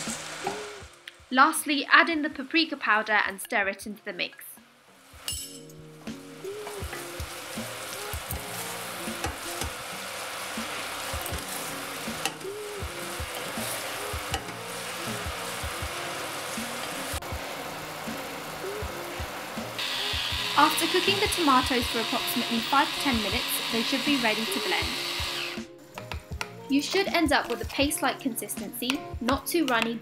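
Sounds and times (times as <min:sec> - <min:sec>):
chutney sizzling in oil: 0:00.0 - 0:01.1, 0:04.9 - 0:26.2.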